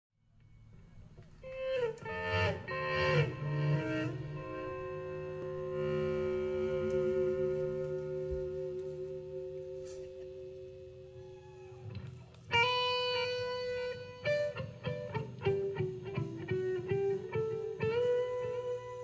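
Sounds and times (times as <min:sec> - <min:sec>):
electric guitar solo: 0:00.4 - 0:19.0.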